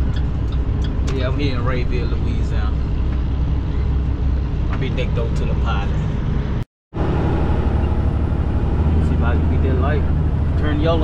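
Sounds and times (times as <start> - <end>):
truck diesel engine rumbling: 0.0 - 11.0.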